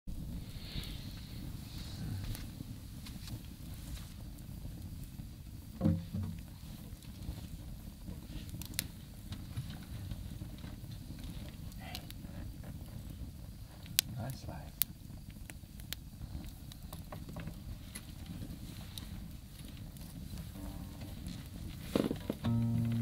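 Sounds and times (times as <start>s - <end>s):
sharp pops of fire: 0.1s - 23.0s
wood fire crackling: 0.1s - 23.0s
low rumble: 20.5s - 23.0s.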